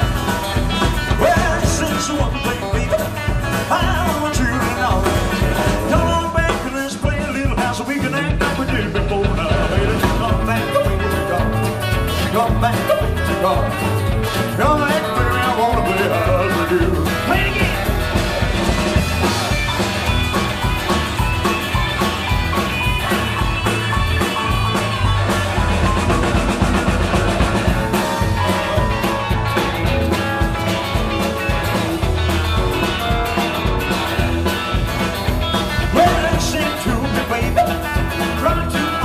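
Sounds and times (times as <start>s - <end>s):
acoustic rhythm guitar: 0.0s - 39.0s
driving bass: 0.0s - 39.0s
drum kit rhythm: 0.0s - 39.0s
electric lead guitar: 0.0s - 39.0s
keyboards: 0.0s - 39.0s.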